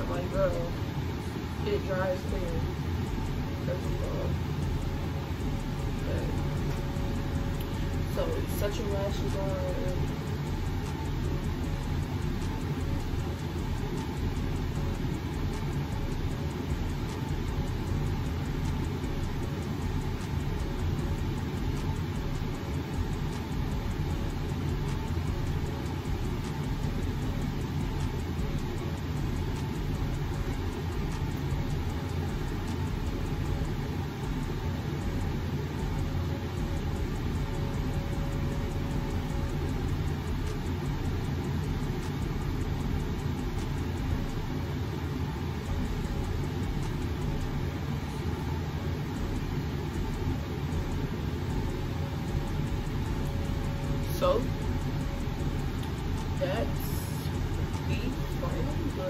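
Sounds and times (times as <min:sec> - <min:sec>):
faint steady hum: 0:00.0 - 0:59.0
low rumbling background noise: 0:00.0 - 0:59.0.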